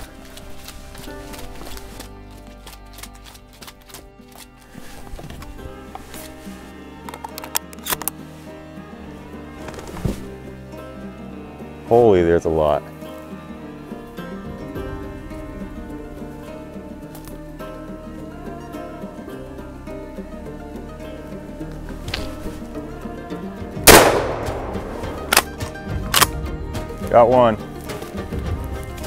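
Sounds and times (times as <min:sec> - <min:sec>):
background music: 0:00.0 - 0:29.0
shotgun shot: 0:23.9 - 0:25.6.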